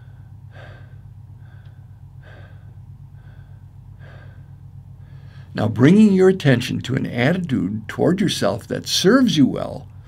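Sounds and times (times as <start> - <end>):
man breathing in and out: 0.0 - 5.6
steady low hum: 0.0 - 10.0.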